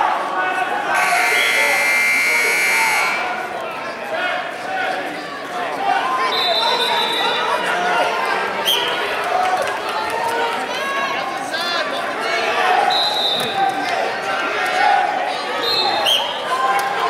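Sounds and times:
crowd chatter: 0:00.0 - 0:17.0
scoreboard buzzer: 0:01.0 - 0:03.4.

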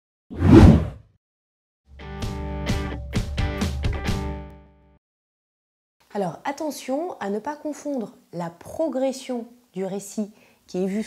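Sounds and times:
whoosh with low thump: 0:00.4 - 0:01.0
music: 0:01.9 - 0:05.0.

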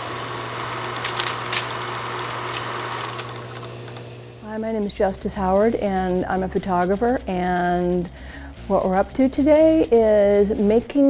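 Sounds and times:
film projector whirring: 0:00.0 - 0:04.5
projector clicks: 0:00.9 - 0:01.8.

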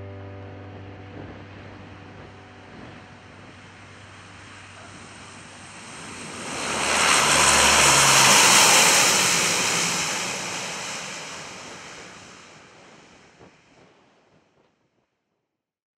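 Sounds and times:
turboprop aircraft rolling past: 0:00.0 - 0:13.4.

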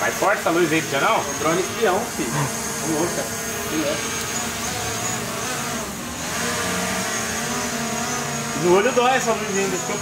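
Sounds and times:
drone propellers buzzing: 0:00.0 - 0:10.0.

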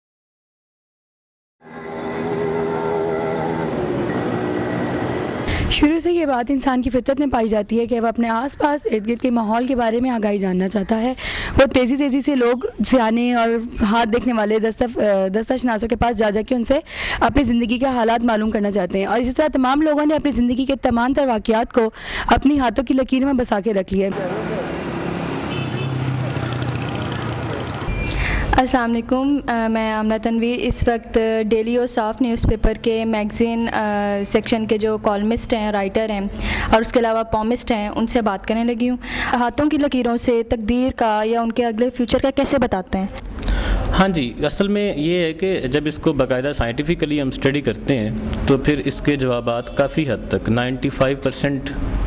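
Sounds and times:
low engine drone: 0:01.6 - 0:05.7
vehicle engines running: 0:01.6 - 0:10.0, 0:23.5 - 0:40.3
traffic noise: 0:01.6 - 0:52.0.

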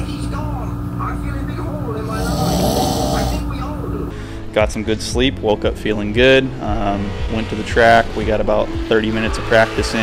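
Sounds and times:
man snoring: 0:02.0 - 0:03.6.

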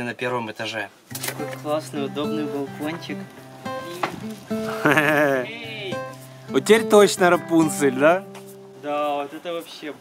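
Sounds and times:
background music: 0:01.2 - 0:09.8.

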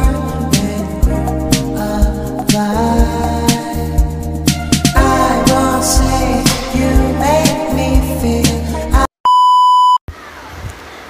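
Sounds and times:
electronic beep: 0:09.3 - 0:10.0.

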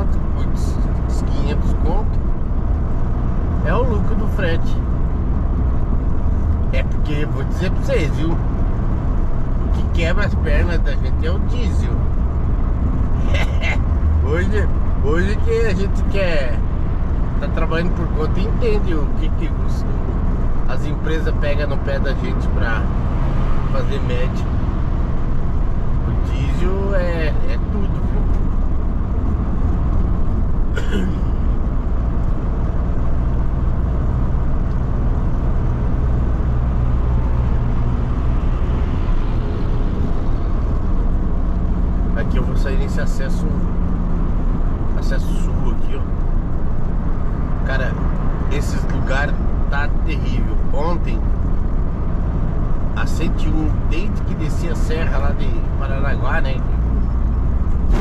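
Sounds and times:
diesel van engine drone: 0:00.0 - 0:58.0
road noise: 0:00.0 - 0:58.0.

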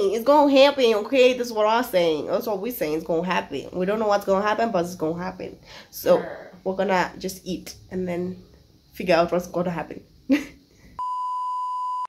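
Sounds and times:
electronic beep tone: 0:11.0 - 0:12.0.

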